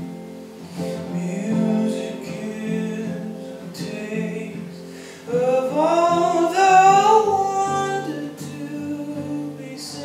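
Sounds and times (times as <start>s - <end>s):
strummed acoustic guitar: 0.0s - 10.0s
man singing: 0.8s - 10.0s.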